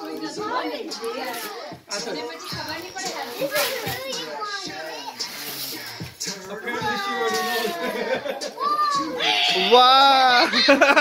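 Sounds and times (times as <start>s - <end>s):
children and adults chattering: 0.0s - 11.0s.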